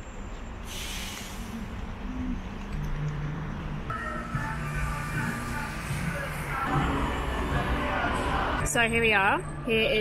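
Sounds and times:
traffic rumble: 0.0s - 10.0s
background music: 3.4s - 10.0s.

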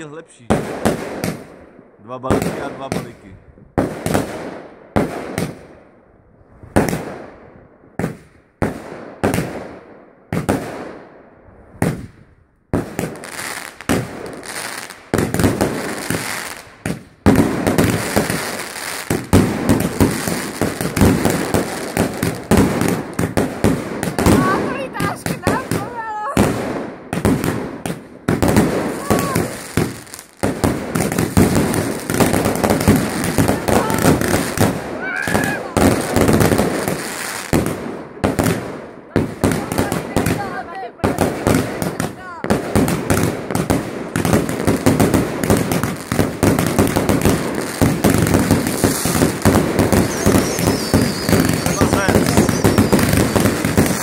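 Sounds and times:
fireworks banging and crackling: 0.0s - 5.9s, 6.6s - 54.0s.

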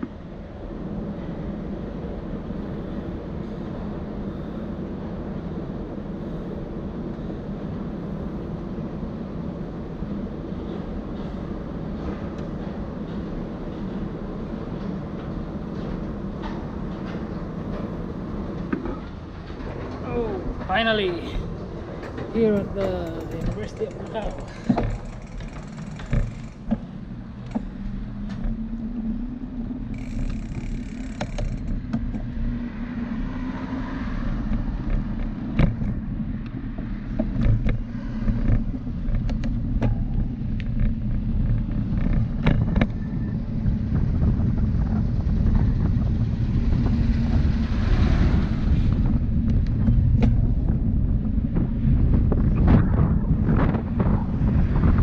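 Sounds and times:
bicycle tyres rumbling on pavement: 0.0s - 55.0s
wind buffeting microphone: 0.0s - 55.0s
knocks and rattles from bumps: 22.0s - 28.6s.

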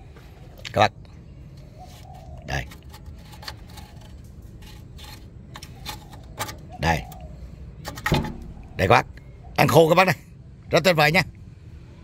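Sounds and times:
clicks and rustles of handling: 1.5s - 7.2s
low steady rumble: 2.8s - 10.7s.

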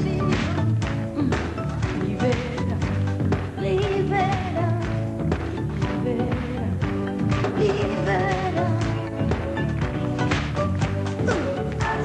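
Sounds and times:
woman singing pop song: 0.0s - 9.4s, 11.2s - 12.0s.

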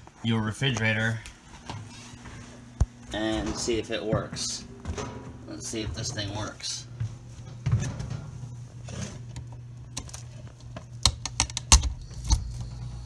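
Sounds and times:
fridge compressor humming: 0.0s - 13.0s.

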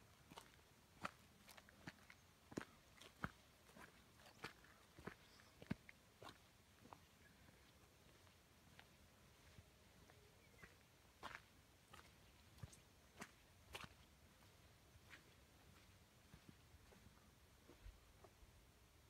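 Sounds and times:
footsteps squelching in wet mud: 0.3s - 7.0s, 10.6s - 16.5s.

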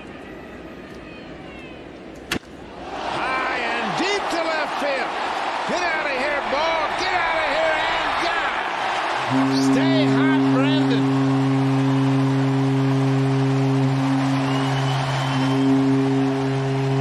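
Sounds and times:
baseball bat crack: 2.2s - 2.6s
stadium crowd cheering: 2.6s - 17.0s.

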